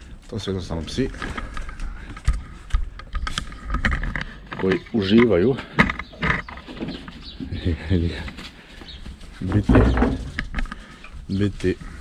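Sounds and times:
outdoor background: 0.0s - 12.0s
man speaking: 0.3s - 1.2s, 4.6s - 5.7s, 7.5s - 8.4s, 9.4s - 10.3s, 11.3s - 11.9s.

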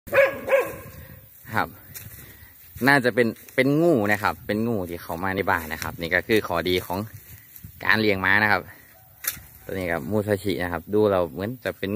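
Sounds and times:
dog barking: 0.1s - 1.0s.

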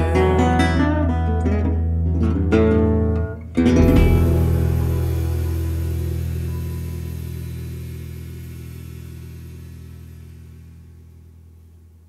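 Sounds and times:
guitar chord ringing: 3.6s - 10.8s.

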